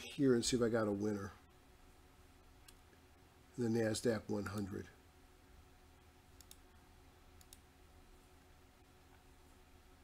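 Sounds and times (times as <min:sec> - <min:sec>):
computer mouse clicks: 0:04.4 - 0:04.7, 0:06.4 - 0:06.7, 0:07.4 - 0:07.7.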